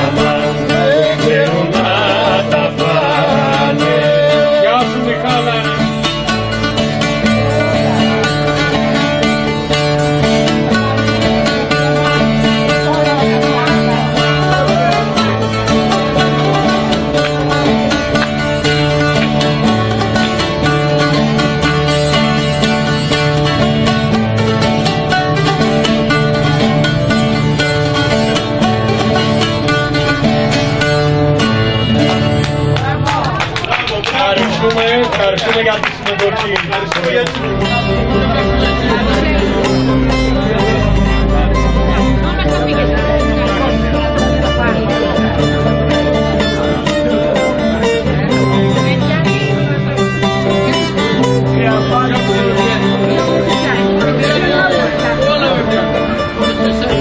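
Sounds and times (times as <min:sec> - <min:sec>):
acoustic guitar: 0:00.0 - 0:57.0
plucked lute: 0:00.0 - 0:57.0
repeating bass figure: 0:37.2 - 0:57.0.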